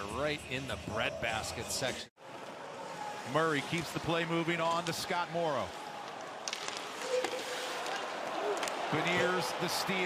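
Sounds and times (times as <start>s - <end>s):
skates scraping ice: 2.8s - 9.6s.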